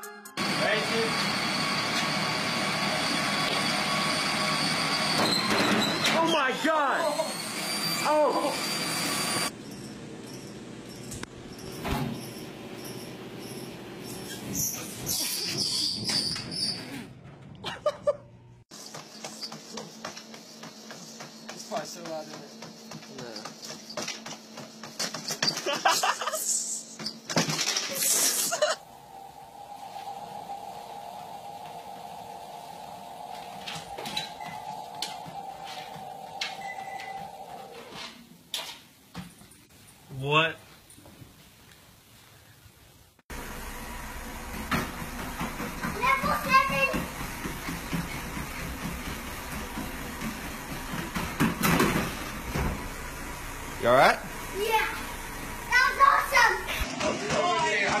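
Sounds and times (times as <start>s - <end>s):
feet knocking on treadmill belt: 18.7s - 25.9s, 44.5s - 53.0s, 56.8s - 58.0s
treadmill hum: 18.8s - 26.2s, 28.8s - 38.0s, 43.4s - 58.0s.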